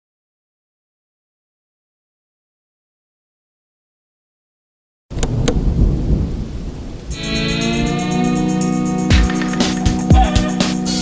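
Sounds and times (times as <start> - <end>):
thunder crack and rumble: 5.1 - 7.1
music with sustained chord: 7.1 - 11.0.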